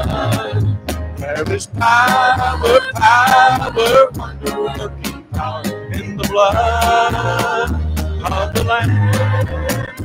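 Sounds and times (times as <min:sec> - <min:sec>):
worship band playing live: 0:00.0 - 0:10.0.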